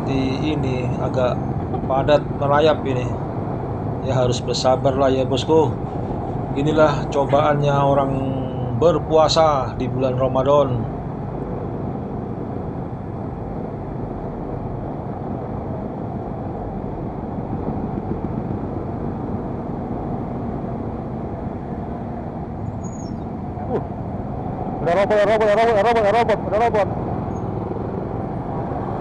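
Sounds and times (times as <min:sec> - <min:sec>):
rumble of traffic: 0:00.0 - 0:29.0.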